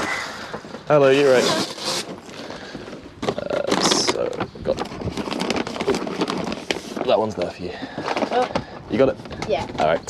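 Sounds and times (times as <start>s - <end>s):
paper bags crinkling: 1.0s - 9.1s.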